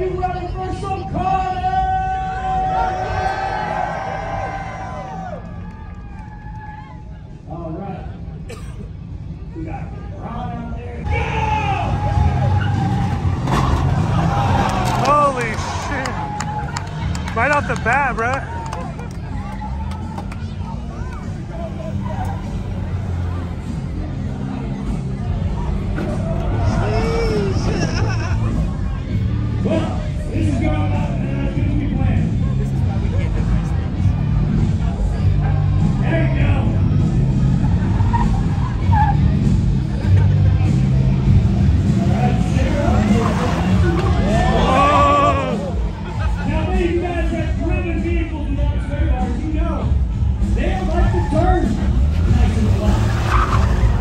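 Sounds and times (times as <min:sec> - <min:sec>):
car engines rumbling: 0:00.0 - 0:54.0
people shouting: 0:11.1 - 0:16.8, 0:44.2 - 0:45.9
car engine running: 0:12.0 - 0:30.4
loud music from speakers: 0:22.6 - 0:54.0.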